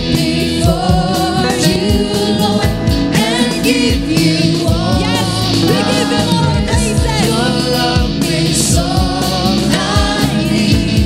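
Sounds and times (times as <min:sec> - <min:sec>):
backing singers: 0:00.0 - 0:11.0
gospel band with guitar and keyboards: 0:00.0 - 0:11.0
woman singing lead: 0:00.0 - 0:11.0.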